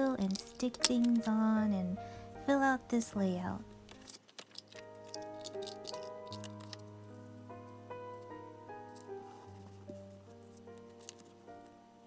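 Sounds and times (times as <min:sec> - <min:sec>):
paper crinkling and tapping: 0:00.0 - 0:01.3, 0:03.9 - 0:06.9, 0:08.9 - 0:11.7
soft piano music: 0:00.0 - 0:12.0.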